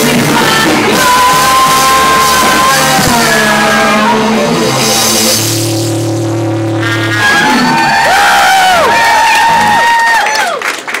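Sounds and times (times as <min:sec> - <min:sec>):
rock band playing loud: 0:00.0 - 0:10.0.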